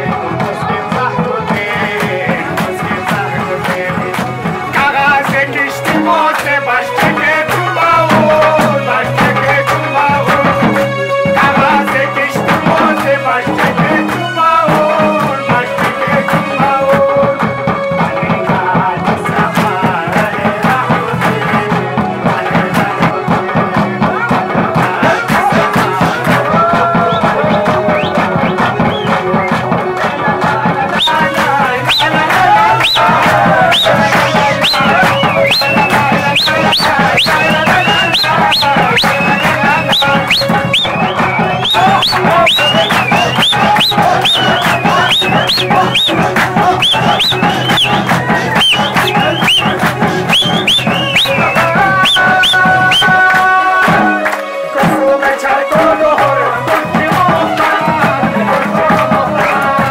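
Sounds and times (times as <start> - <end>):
crowd clapping along: 0.0 - 59.9
drums beating fast rhythm: 0.0 - 59.9.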